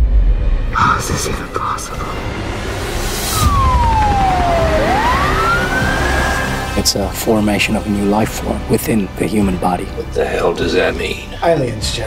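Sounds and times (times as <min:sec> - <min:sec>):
siren wailing: 0:03.2 - 0:07.0.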